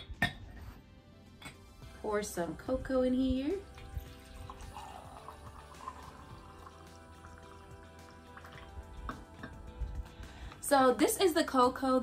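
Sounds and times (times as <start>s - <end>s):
background music: 0.0s - 12.0s
milk trickling into mug: 3.6s - 10.1s.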